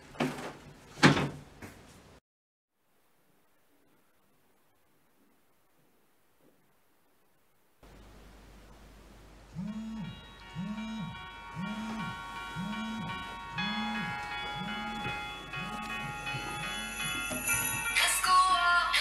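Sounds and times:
phone vibrating buzz: 9.5 - 17.7
chiming phone ringtone: 9.6 - 18.5.

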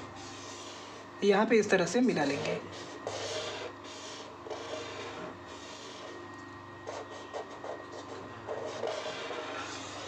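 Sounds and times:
pen scratching on paper: 2.8 - 6.1, 6.8 - 10.0.

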